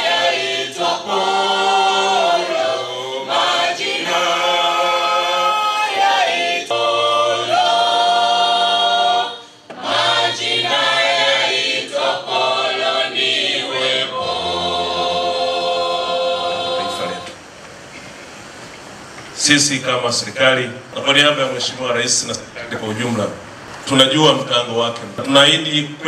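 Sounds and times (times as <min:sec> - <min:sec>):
choir singing unaccompanied: 0:00.0 - 0:17.6.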